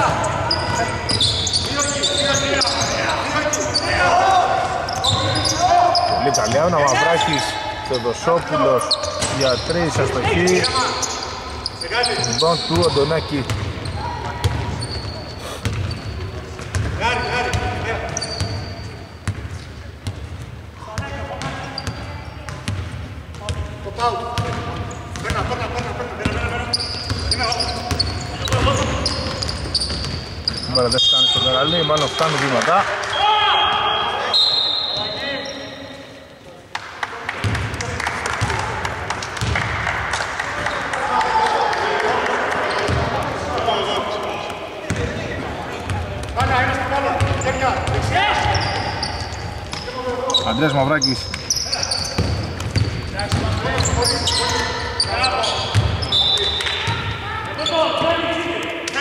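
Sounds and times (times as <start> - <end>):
players calling out: 0.0 - 19.2, 40.6 - 59.0.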